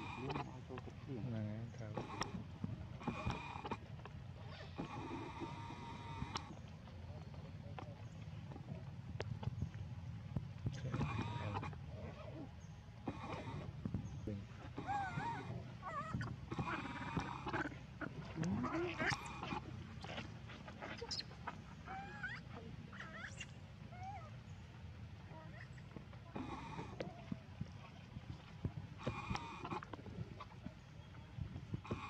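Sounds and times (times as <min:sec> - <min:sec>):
baby monkey crying: 0:10.9 - 0:11.8, 0:14.8 - 0:17.7, 0:21.9 - 0:24.3.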